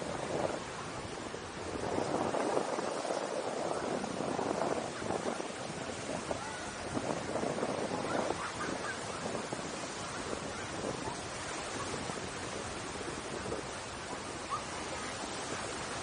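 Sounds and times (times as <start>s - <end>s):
waves washing on sandy beach: 0.0s - 16.0s.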